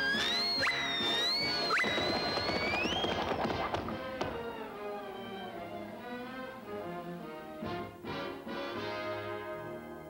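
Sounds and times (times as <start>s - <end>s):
high whistle-like gliding tone: 0.0s - 3.2s
cartoon music score: 0.0s - 9.6s.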